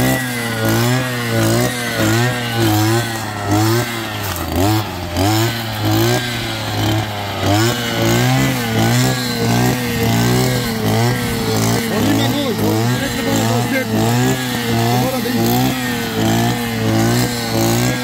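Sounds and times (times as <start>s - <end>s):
brush cutter engine revving: 0.0s - 18.0s.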